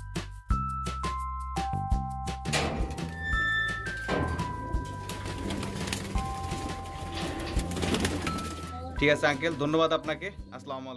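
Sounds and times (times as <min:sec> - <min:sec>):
background music with held notes: 0:00.0 - 0:10.9.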